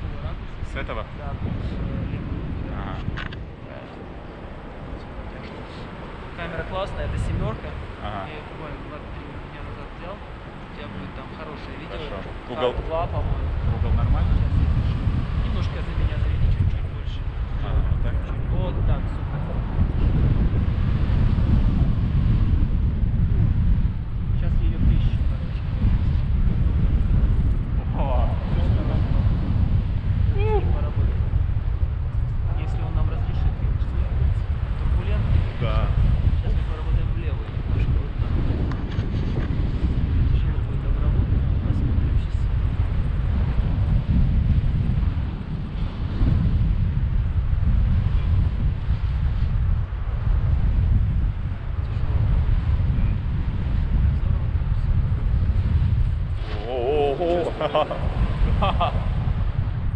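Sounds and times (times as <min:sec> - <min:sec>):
wind buffeting microphone: 0:00.0 - 0:59.9
indistinct voices: 0:56.4 - 0:58.5.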